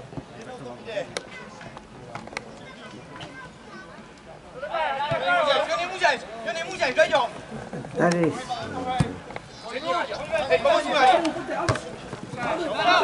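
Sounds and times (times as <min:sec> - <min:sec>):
players calling: 0:02.3 - 0:13.0.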